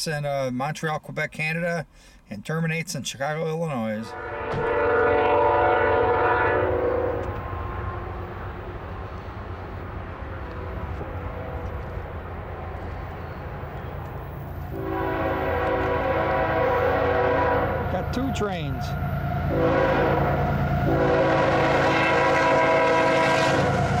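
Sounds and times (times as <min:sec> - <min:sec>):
freight train rumbling past: 0:04.0 - 0:24.0
locomotive air horn blast: 0:04.1 - 0:08.3, 0:10.5 - 0:12.0, 0:14.7 - 0:24.0.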